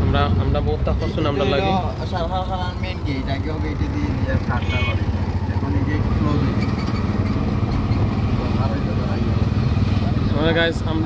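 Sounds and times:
auto-rickshaw engine running: 0:00.0 - 0:11.0.

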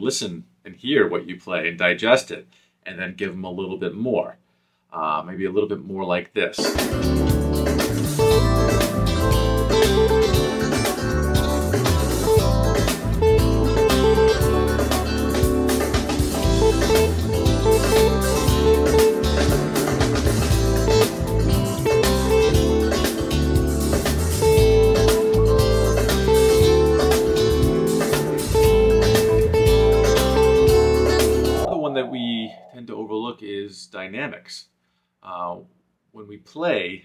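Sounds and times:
backing track: 0:06.6 - 0:32.8
electric guitar soloing: 0:06.6 - 0:32.8.

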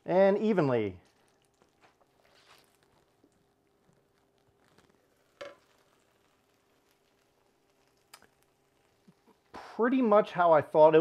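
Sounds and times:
faint sizzling caramel: 0:00.0 - 0:11.0.

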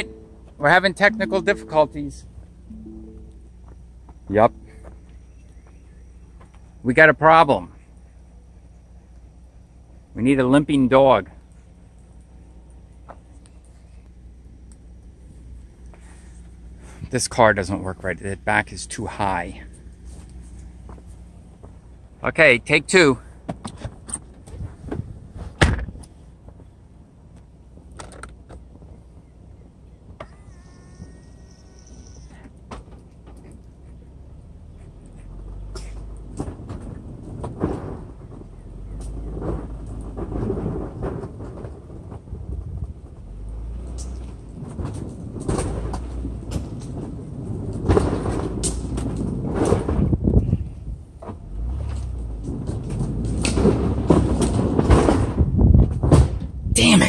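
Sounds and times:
car engine and tyres rumbling: 0:00.0 - 0:57.0
wind buffeting microphone: 0:24.4 - 0:26.0, 0:36.3 - 0:43.4, 0:44.2 - 0:51.2, 0:52.4 - 0:56.8.

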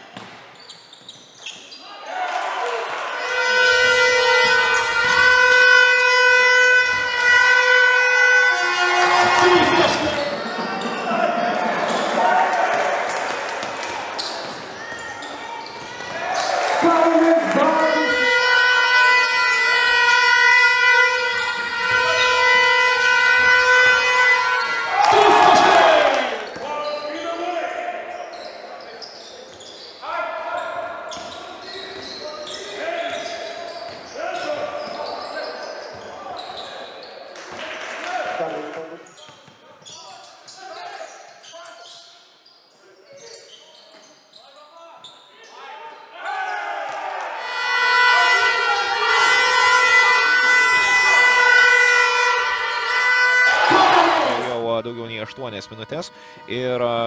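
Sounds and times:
loud steady horn: 0:03.1 - 0:10.4, 0:16.9 - 0:26.2, 0:47.4 - 0:54.5.

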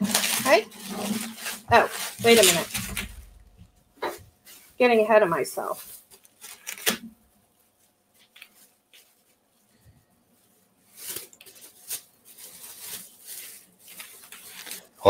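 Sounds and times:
bubble wrap rustling and crackling: 0:00.0 - 0:15.0.

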